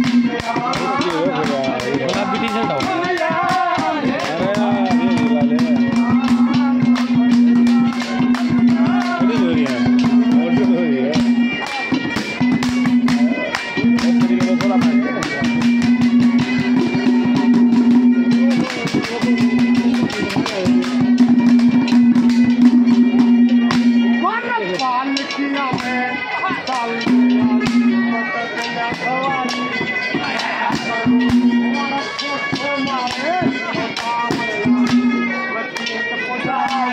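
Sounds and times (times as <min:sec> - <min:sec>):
fast percussion strikes: 0:00.0 - 0:36.9
man singing: 0:00.2 - 0:09.9.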